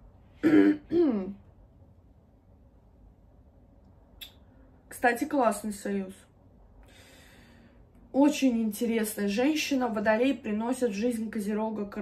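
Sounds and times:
woman clearing her throat: 0:00.4 - 0:01.4.

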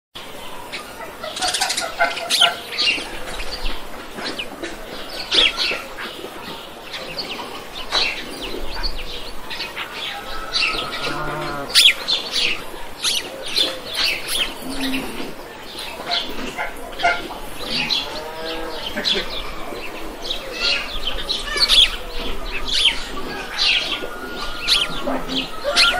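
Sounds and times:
small birds chirping: 0:00.4 - 0:25.9
farm animal call: 0:10.1 - 0:12.0, 0:23.2 - 0:25.9.

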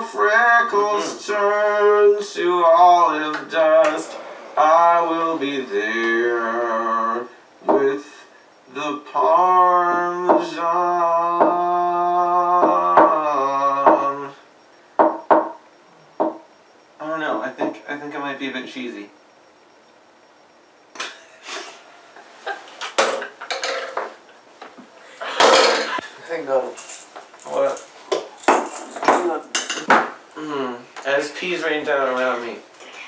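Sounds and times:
man singing low note: 0:00.2 - 0:08.0
sharp clattering knocks: 0:15.0 - 0:15.6, 0:16.2 - 0:16.5.

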